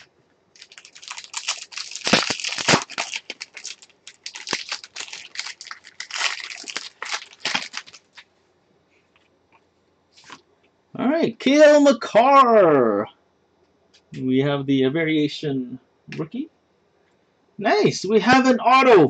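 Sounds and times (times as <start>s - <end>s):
foil pack crinkling and tearing: 0.6s - 8.3s.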